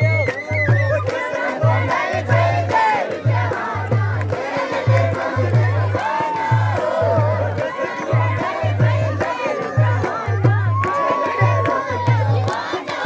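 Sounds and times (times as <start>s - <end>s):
crowd shouting: 0.0s - 3.8s, 4.4s - 13.0s.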